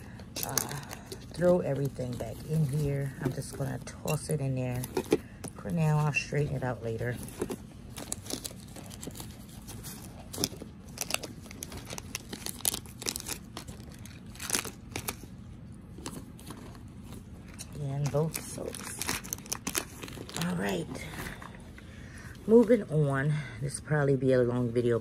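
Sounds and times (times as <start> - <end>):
plastic packaging crinkling: 0.0 - 22.8.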